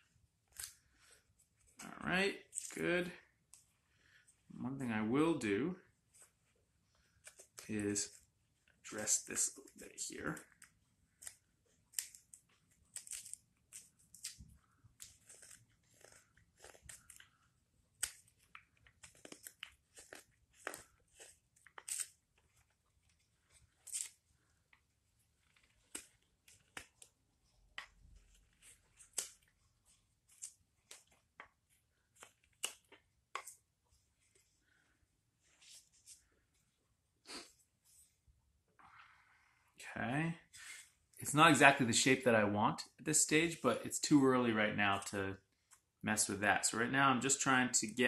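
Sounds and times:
knife carving wood: 0:10.4 - 0:24.4.

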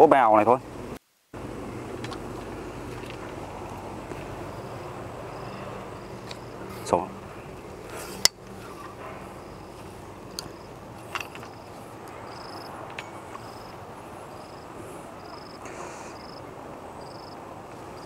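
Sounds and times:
outdoor background hiss: 0:00.0 - 0:18.0
insect chirping in high pulses: 0:03.5 - 0:07.7, 0:09.4 - 0:18.0.

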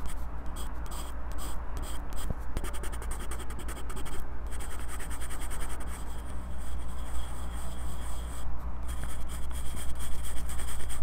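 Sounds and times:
pencil scratching on paper: 0:00.0 - 0:11.0.

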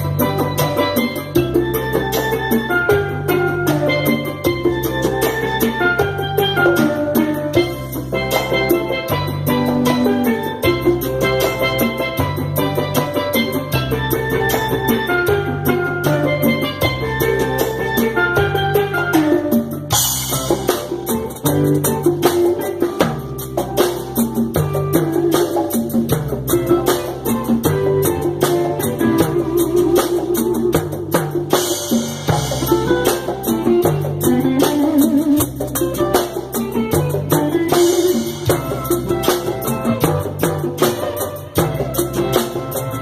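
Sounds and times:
live reggae band playing: 0:00.0 - 0:43.0.

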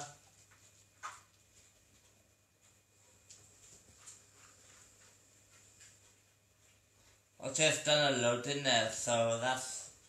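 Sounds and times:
faint soft rustles: 0:00.2 - 0:07.4.

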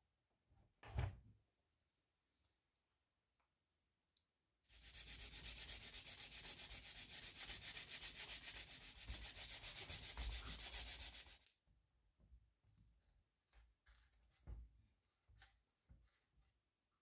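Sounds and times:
sanding wood: 0:04.7 - 0:11.4.

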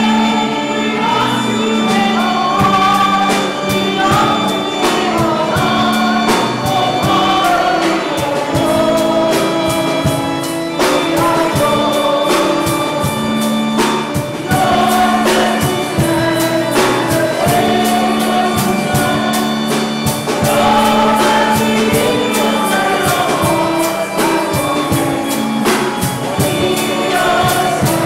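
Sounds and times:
choir singing a hymn: 0:00.0 - 0:28.0
instrumental accompaniment: 0:00.0 - 0:28.0
steady percussion beat: 0:00.0 - 0:28.0.

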